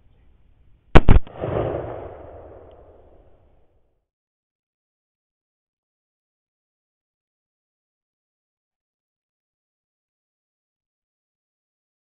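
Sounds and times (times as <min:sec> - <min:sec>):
rifle shot with echo: 0:01.0 - 0:03.2.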